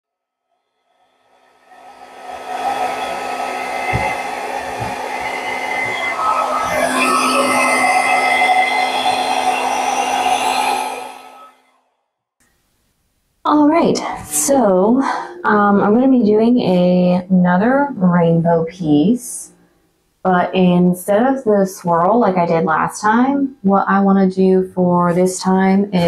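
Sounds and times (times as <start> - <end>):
hair dryer running: 1.7 - 11.6
low bumps: 2.2 - 9.3.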